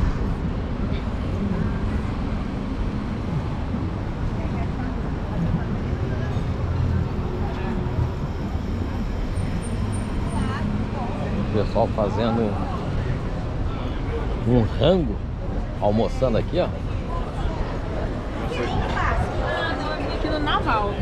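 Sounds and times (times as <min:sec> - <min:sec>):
bus engine: 0:00.0 - 0:21.0
city traffic rumble: 0:00.0 - 0:21.0
faint voices of passers-by: 0:00.0 - 0:21.0.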